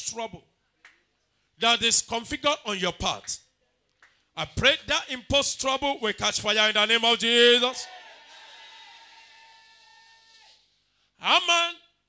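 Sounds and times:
echo of shouted words in hall: 6.6s - 12.0s.

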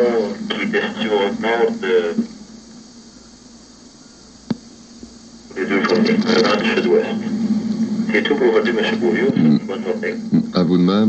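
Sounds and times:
radio broadcast hiss: 0.0s - 11.0s.

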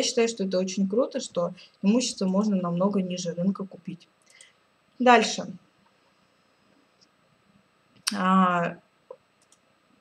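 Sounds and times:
faint clicks: 9.1s - 9.7s.

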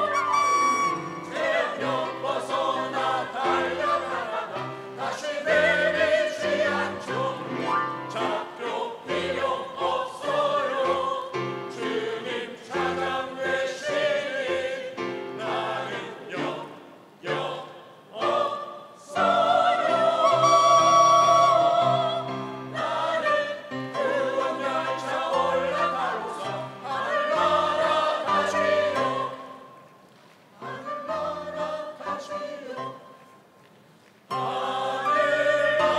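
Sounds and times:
mixed choir singing: 0.0s - 29.9s, 30.6s - 33.2s, 34.3s - 35.9s.

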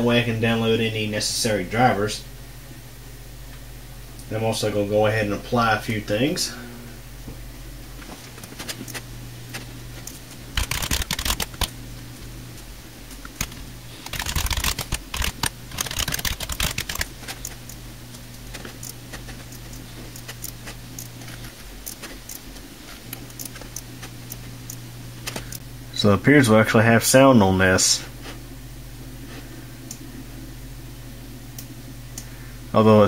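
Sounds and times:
steady low hum: 0.0s - 33.0s
computer keyboard typing: 8.5s - 11.7s, 13.3s - 17.8s, 18.4s - 25.6s.

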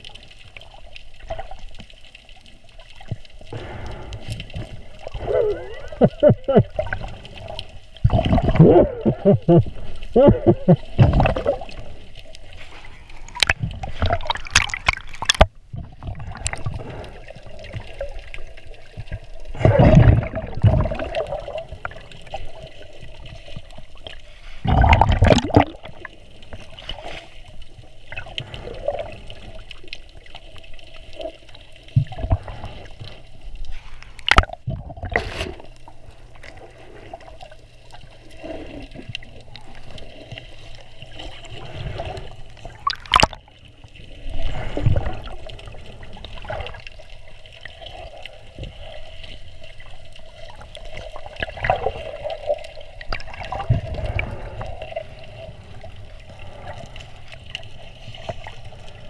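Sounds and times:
water sloshing and gurgling: 0.0s - 59.0s
rush of water: 2.7s - 30.4s, 36.4s - 59.0s.

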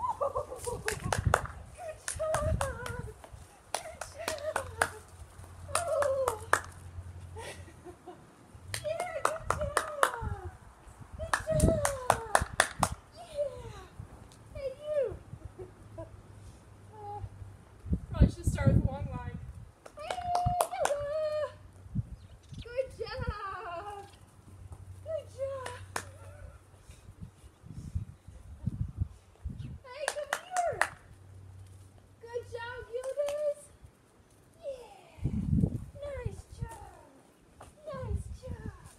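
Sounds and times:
hands clapping rhythmically: 0.8s - 5.0s, 5.7s - 6.8s, 8.7s - 10.3s, 11.3s - 13.0s, 19.8s - 21.1s, 25.6s - 26.1s, 30.0s - 31.0s.

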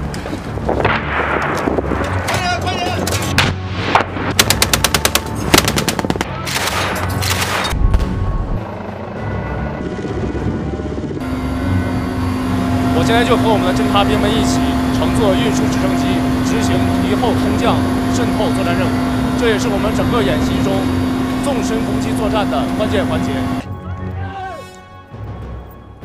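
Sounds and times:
automatic gunfire bursts: 4.4s - 7.7s.

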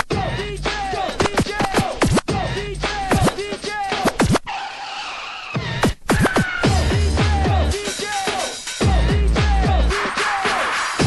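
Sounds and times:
hardcore techno kick drums: 0.0s - 4.4s, 5.8s - 10.0s.

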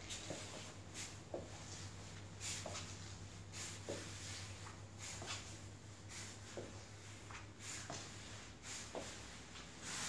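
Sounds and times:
soft footsteps: 0.0s - 10.0s.

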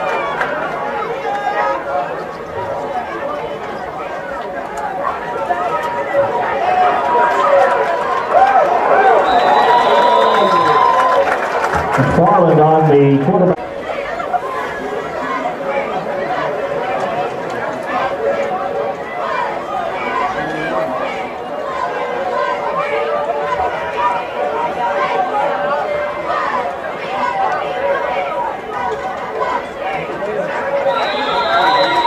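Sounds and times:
crowd chattering: 0.0s - 32.0s.

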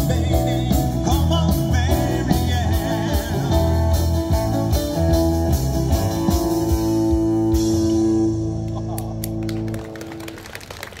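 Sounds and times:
scattered clapping: 8.7s - 11.0s.

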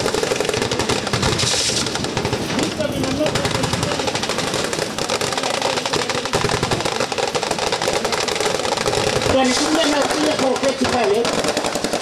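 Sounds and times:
automatic gunfire: 0.0s - 12.0s.

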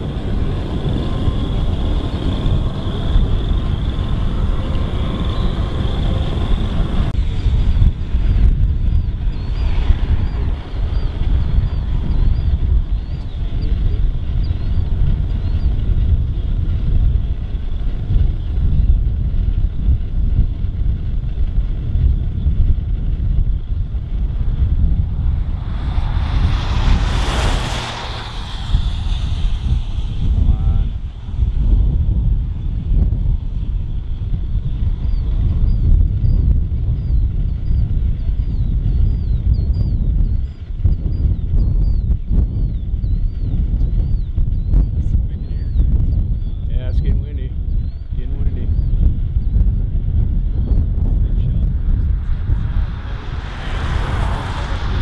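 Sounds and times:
rush of noise: 0.0s - 41.2s, 47.5s - 55.0s
wind buffeting microphone: 0.0s - 55.0s.

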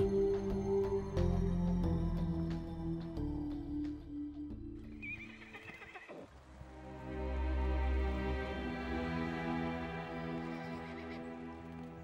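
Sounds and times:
film music with sustained notes: 0.0s - 12.0s
horse whinny: 5.0s - 6.4s.

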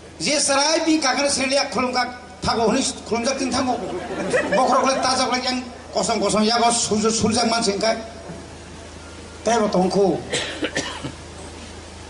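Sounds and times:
steady low hum: 0.0s - 12.0s
man coughing: 10.3s - 11.2s.

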